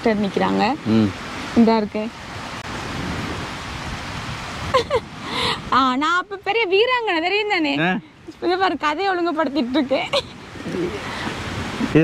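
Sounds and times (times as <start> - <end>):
steady broadband rushing noise: 0.0 - 12.0
person's voice: 0.1 - 2.0.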